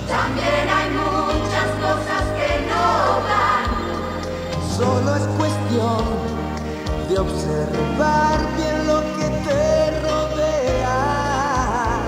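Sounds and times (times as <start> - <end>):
pop song with group singing: 0.0 - 6.4, 7.2 - 12.0.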